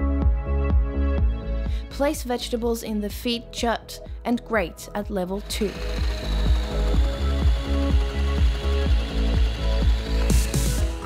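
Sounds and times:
background music with steady beat: 0.0 - 11.0
hand blender motor whirring: 5.2 - 11.0.

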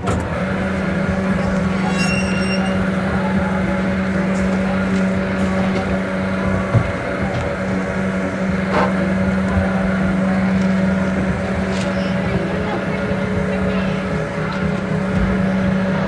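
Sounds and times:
ride machinery humming: 0.0 - 16.0.

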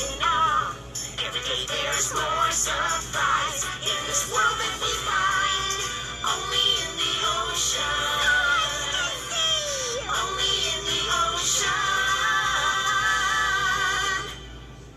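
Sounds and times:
voices singing over music: 0.0 - 14.9.

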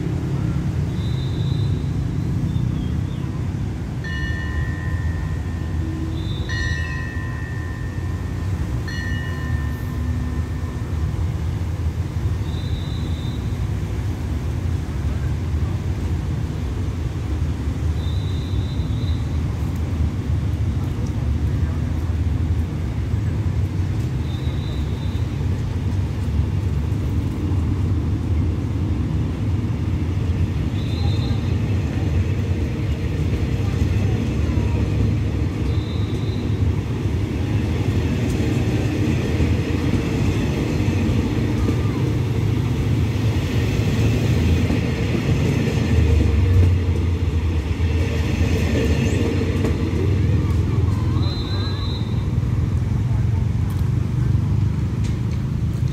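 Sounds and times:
idling diesel train engine drone: 0.0 - 55.9.

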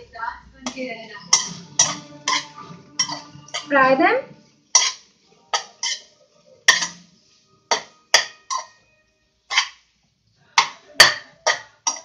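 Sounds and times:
spatula scraping and knocking on a wok: 0.6 - 3.7, 4.7 - 7.1, 7.7 - 8.8, 9.5 - 9.9, 10.6 - 12.0.

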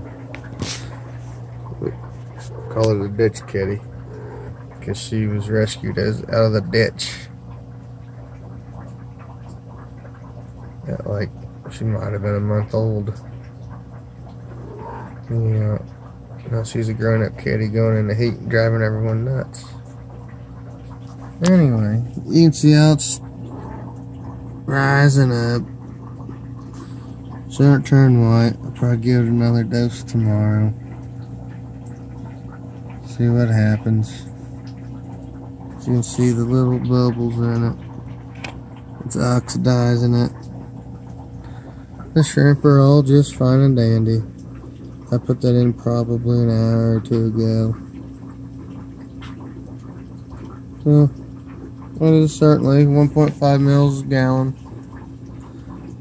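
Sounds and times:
aquarium filter humming: 0.0 - 56.0
faint bubbling water: 0.0 - 56.0.

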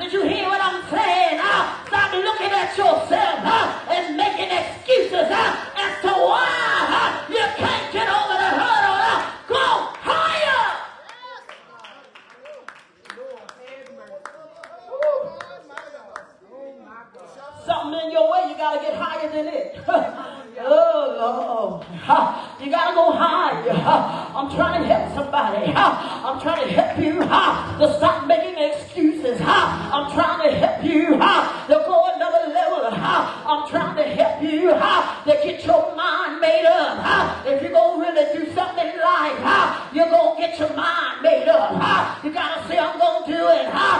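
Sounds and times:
woman preaching over loudspeakers: 0.0 - 10.9, 17.6 - 43.9
woman speaking over pa speakers: 22.6 - 43.6.

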